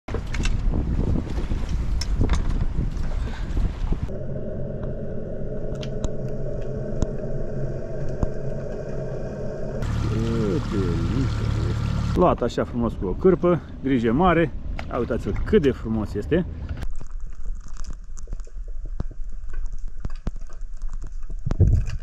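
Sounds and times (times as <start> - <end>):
wind rushing past microphone: 0.2 - 9.8
muffled underwater low hum: 4.0 - 12.2
water rushing: 5.6 - 12.2.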